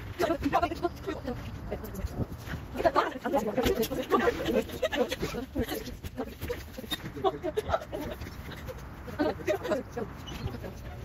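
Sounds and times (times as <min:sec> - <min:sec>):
woman laughing: 0:04.0 - 0:05.9, 0:07.2 - 0:09.7.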